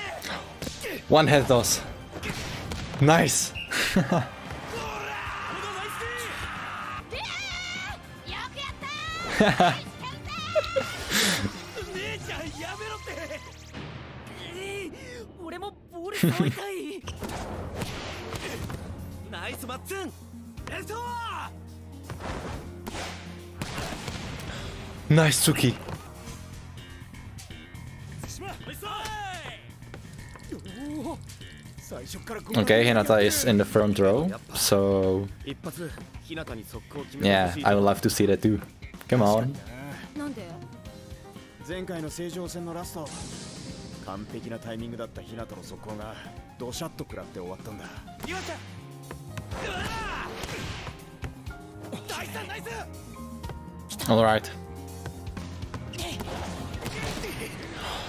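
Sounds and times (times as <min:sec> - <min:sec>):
background music: 0:00.0 - 0:58.0
man speaking: 0:31.9 - 0:35.6.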